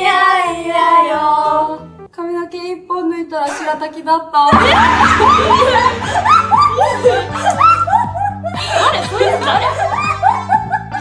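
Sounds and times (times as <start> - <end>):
background music: 0.0 - 2.5, 4.5 - 11.0
women giggling: 4.5 - 11.0.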